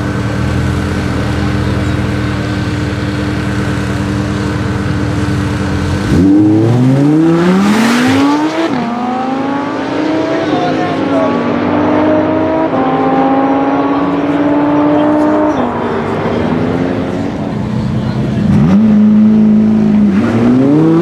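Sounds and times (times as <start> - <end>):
cars launching and accelerating: 0.0 - 21.0
sports car engines revving: 0.0 - 21.0.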